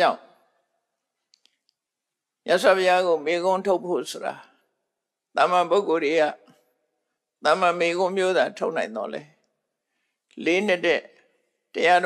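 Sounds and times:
man speaking: 7.4s - 9.3s, 10.4s - 11.1s.

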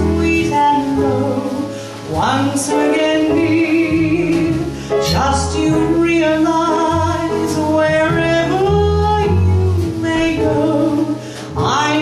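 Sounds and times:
double bass: 0.0s - 12.0s
drums: 0.0s - 12.0s
piano: 0.0s - 12.0s.

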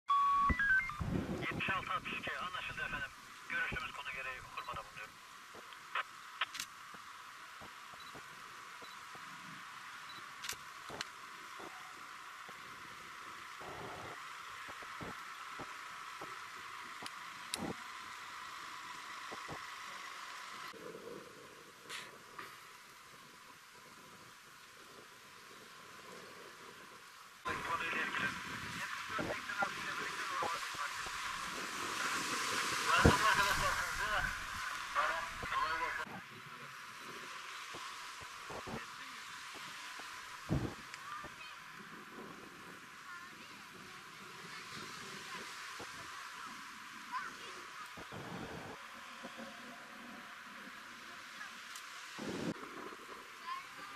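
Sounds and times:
steady outdoor hiss: 0.1s - 53.9s
faint clicks: 5.5s - 9.3s, 10.4s - 11.8s.

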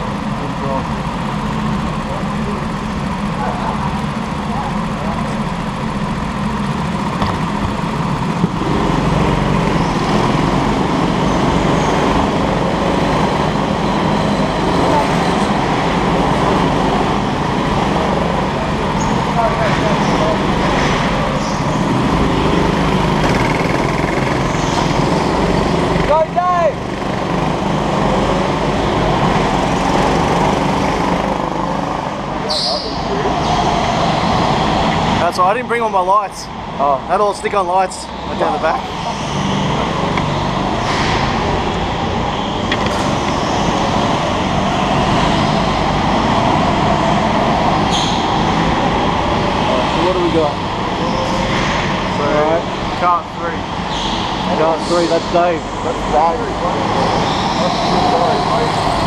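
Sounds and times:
go-kart engines droning: 0.0s - 59.0s.

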